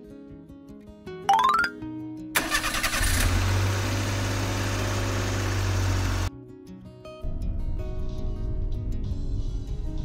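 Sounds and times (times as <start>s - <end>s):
car engine idling: 2.4s - 6.3s
car starter whirr: 2.4s - 6.3s.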